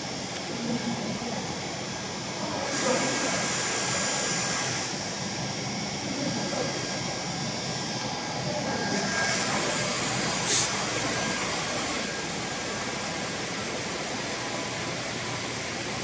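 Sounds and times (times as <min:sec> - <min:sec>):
textile machinery running: 0:00.0 - 0:16.0.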